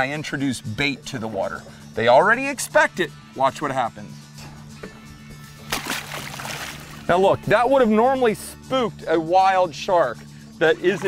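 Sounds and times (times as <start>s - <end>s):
background music with low tones: 0.0s - 11.0s
splash at water surface: 5.7s - 7.1s.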